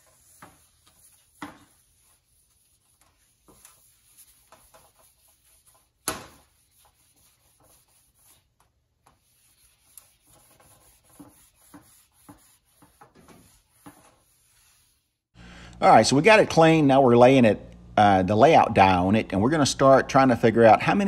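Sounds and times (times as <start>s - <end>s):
cloth wiping metal sheet: 0.0s - 15.2s.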